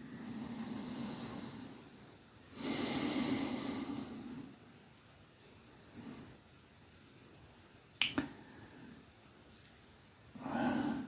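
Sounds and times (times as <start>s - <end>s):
person breathing: 0.0s - 4.6s, 8.3s - 9.1s, 10.4s - 11.0s.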